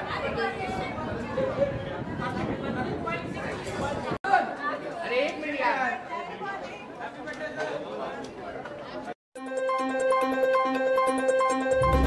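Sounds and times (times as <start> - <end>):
crowd chatter: 0.0 - 9.2.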